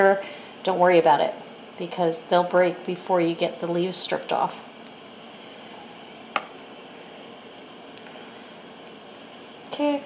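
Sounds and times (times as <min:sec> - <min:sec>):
gas burner hissing: 0:00.0 - 0:10.0.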